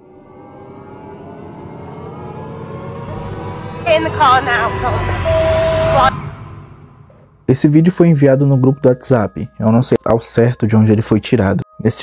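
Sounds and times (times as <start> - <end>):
steady held tone: 0.0 - 7.4.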